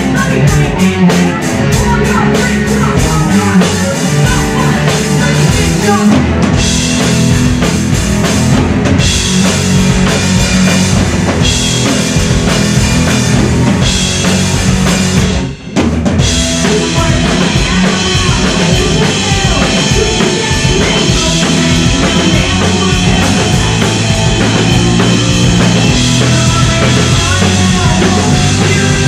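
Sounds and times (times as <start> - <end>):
bass guitar: 0.0 - 29.0
drum kit pounding a steady beat: 0.0 - 29.0
electric guitar: 0.0 - 29.0.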